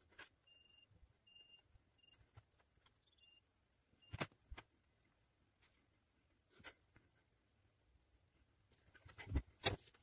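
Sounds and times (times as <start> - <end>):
multimeter continuity beeps: 0.4 - 4.3.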